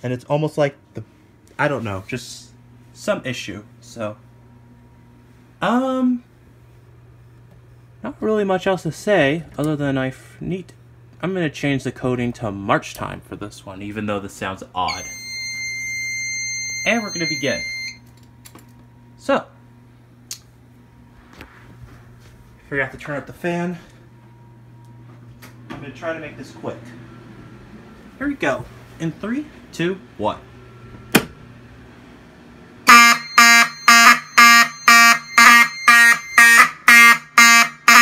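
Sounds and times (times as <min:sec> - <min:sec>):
low steady hum: 0:00.0 - 0:38.0
high electronic buzzer beep: 0:14.9 - 0:18.0, 0:32.9 - 0:38.0
pulsing fire alarm horn: 0:14.9 - 0:18.0, 0:32.8 - 0:38.0.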